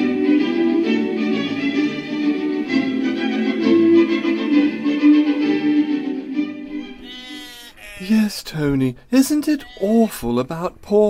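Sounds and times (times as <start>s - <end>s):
orchestral music with strings: 0.0s - 7.1s
sheep bleating: 6.8s - 8.4s, 9.2s - 10.4s.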